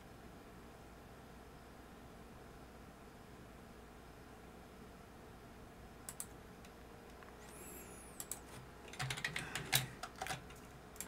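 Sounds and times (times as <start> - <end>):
computer keyboard typing: 6.1 - 6.4, 8.2 - 11.0.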